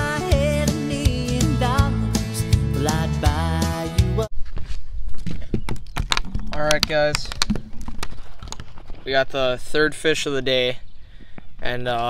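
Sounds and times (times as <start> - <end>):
background music: 0.0 - 4.3.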